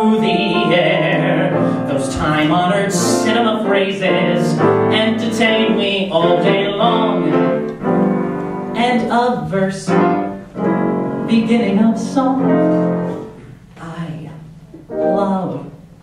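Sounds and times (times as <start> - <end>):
man singing into a microphone: 0.0 - 7.8, 8.7 - 10.3, 11.3 - 12.8
piano accompaniment: 0.0 - 16.0.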